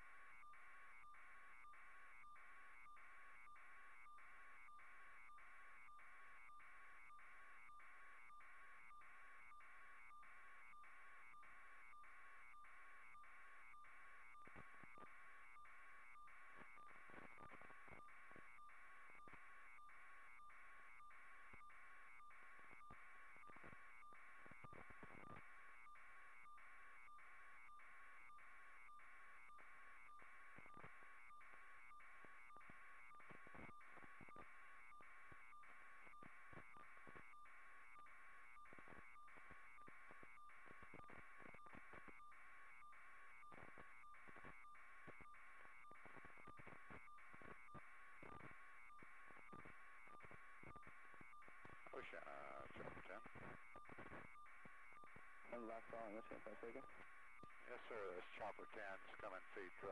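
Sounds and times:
faint electronic tone: 0:39.1 - 0:59.9.

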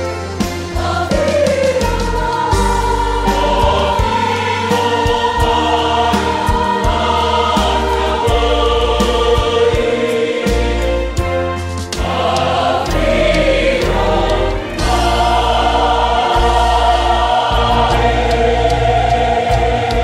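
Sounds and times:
choir singing a gospel hymn: 0:00.0 - 0:20.0
bass line: 0:01.9 - 0:20.0.

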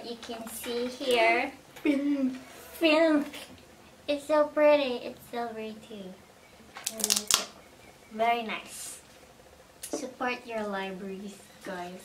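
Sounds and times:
book jacket crackling: 0:06.8 - 0:07.5.

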